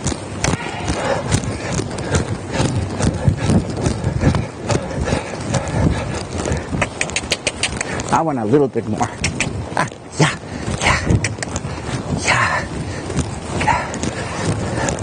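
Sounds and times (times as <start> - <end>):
horse hoofbeats on dirt: 0.0 - 15.0
horse movement noise: 0.0 - 15.0.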